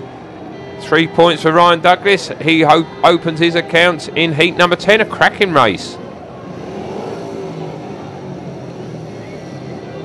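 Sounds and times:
motorcycle engines running: 0:06.0 - 0:10.0.

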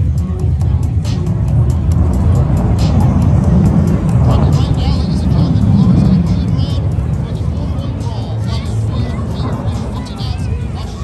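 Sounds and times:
fighter jet flying past: 0:00.0 - 0:11.0.

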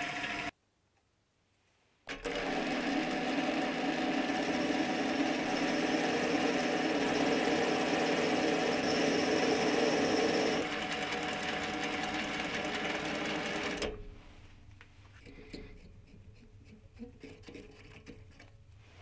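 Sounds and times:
metal lathe cutting thread: 0:02.1 - 0:13.9.

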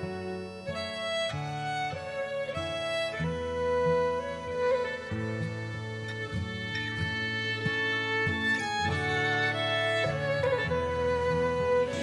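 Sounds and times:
plucked guitar: 0:00.0 - 0:12.0
violin holding notes: 0:00.0 - 0:12.0.

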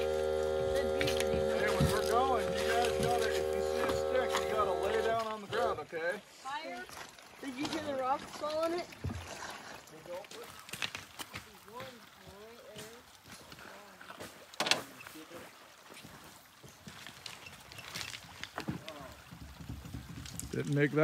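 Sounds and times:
distant voices: 0:00.0 - 0:05.8.

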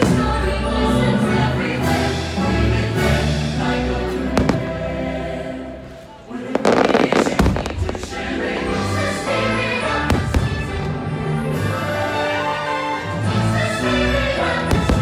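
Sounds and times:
soundtrack music with choir: 0:00.0 - 0:15.0
fireworks crackling: 0:04.2 - 0:05.0, 0:06.4 - 0:11.2
fireworks bangs: 0:04.3 - 0:05.0, 0:06.5 - 0:08.4, 0:14.7 - 0:15.0.

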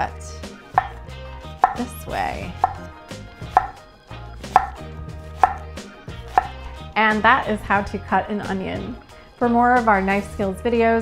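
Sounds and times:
knife knocking on wooden board: 0:00.7 - 0:01.9, 0:02.6 - 0:03.8, 0:04.5 - 0:04.8, 0:05.4 - 0:06.6
knife slicing onion: 0:00.7 - 0:06.7.

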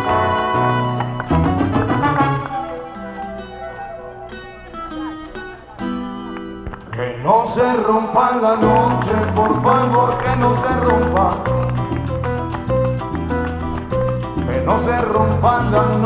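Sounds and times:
salsa band music: 0:00.0 - 0:16.0.

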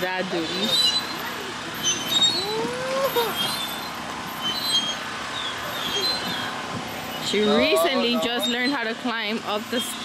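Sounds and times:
steady outdoor rush: 0:00.0 - 0:10.0.

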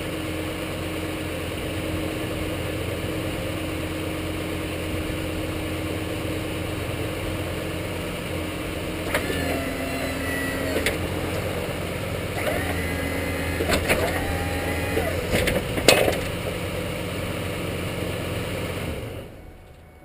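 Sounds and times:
truck engine idling: 0:00.0 - 0:20.0
hydraulic pump humming: 0:06.9 - 0:17.2.

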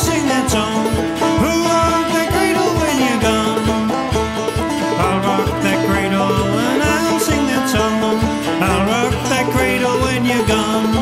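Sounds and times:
old-time string-band music: 0:00.0 - 0:11.0.

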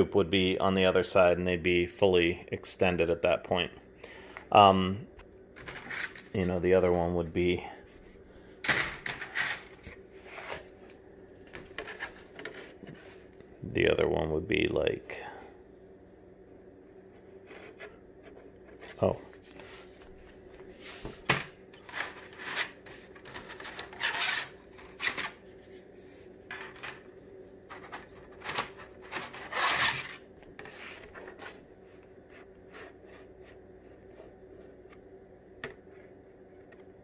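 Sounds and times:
plastic parts rubbing and clicking: 0:21.8 - 0:25.4, 0:27.7 - 0:31.6.

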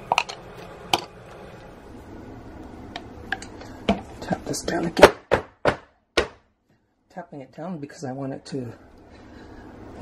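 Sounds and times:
steady low hum: 0:00.0 - 0:05.3, 0:06.0 - 0:10.0.

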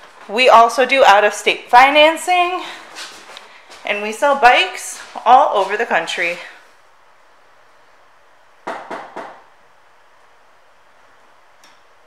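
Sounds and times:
steady low hiss: 0:00.0 - 0:12.0
sharp knocks: 0:08.6 - 0:09.4.

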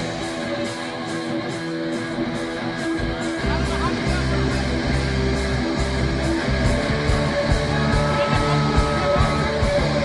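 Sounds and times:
electric guitar picking: 0:00.0 - 0:10.0
hard rock band playing: 0:00.0 - 0:10.0.

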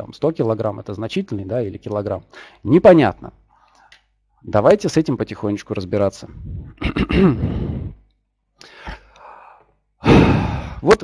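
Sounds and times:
breathy exhale: 0:08.6 - 0:10.8
man sighing: 0:08.6 - 0:10.8.

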